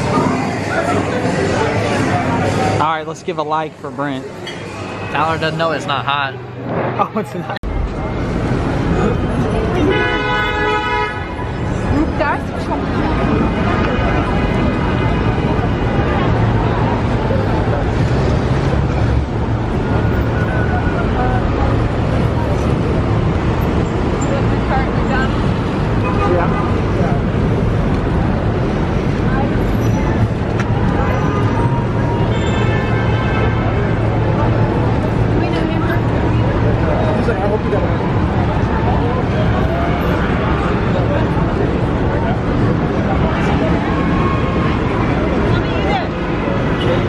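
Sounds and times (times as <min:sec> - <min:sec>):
chatter of passersby: 0:00.0 - 0:47.0
traffic noise: 0:00.0 - 0:47.0.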